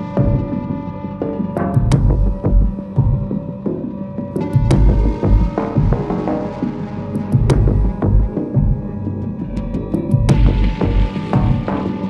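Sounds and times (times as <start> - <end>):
throbbing low pulse: 4.5 - 6.3, 7.3 - 9.0, 10.1 - 12.0.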